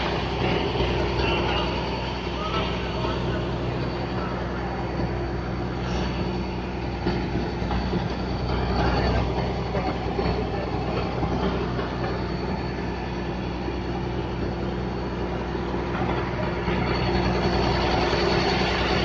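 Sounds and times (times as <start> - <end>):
boat engine drone: 0.0 - 19.0.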